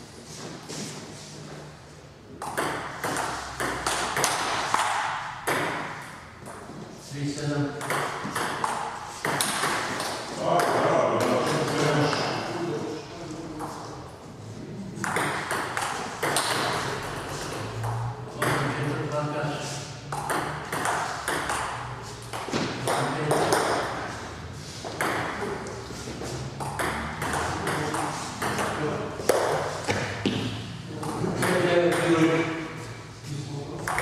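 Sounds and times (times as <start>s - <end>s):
people talking: 10.4s - 14.0s, 18.3s - 19.8s, 22.8s - 23.9s, 27.2s - 29.2s, 30.9s - 34.0s.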